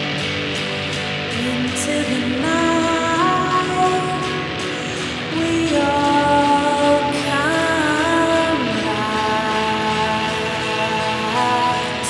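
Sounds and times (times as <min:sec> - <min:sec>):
electric guitar droning chord: 0:00.0 - 0:12.0.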